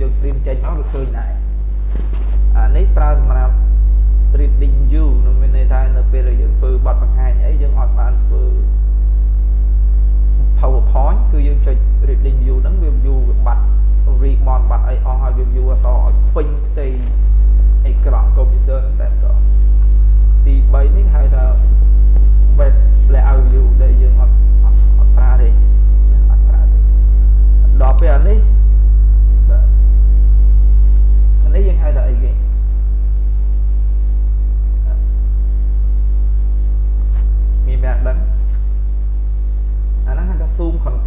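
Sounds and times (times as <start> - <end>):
person speaking: 0.0 - 3.7, 4.3 - 8.7, 10.6 - 19.8, 20.4 - 21.8, 22.4 - 28.7, 29.4 - 29.8, 31.4 - 32.5, 34.5 - 35.3, 37.1 - 38.7, 40.0 - 41.0
low electrical hum: 0.0 - 41.0.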